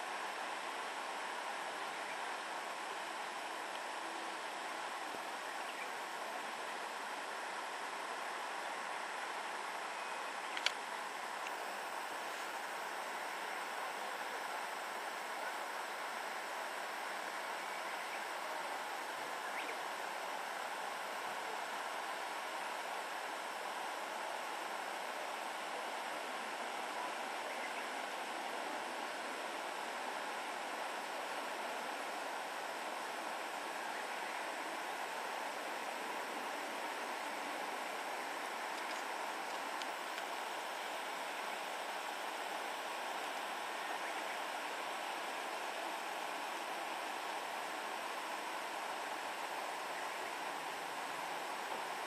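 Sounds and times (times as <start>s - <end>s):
steady outdoor hiss: 0.0s - 52.0s
sharp click: 10.5s - 10.8s.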